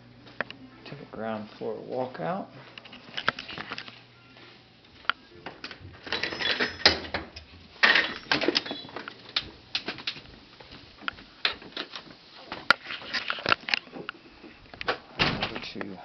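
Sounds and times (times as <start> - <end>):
door opening clicks and knocks: 5.7 - 9.1, 14.8 - 15.7.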